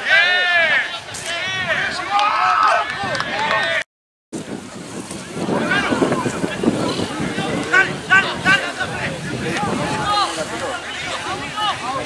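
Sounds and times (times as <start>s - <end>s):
players and spectators shouting: 0.0s - 3.8s, 5.3s - 12.0s
wind on microphone: 0.6s - 3.8s, 4.4s - 12.0s.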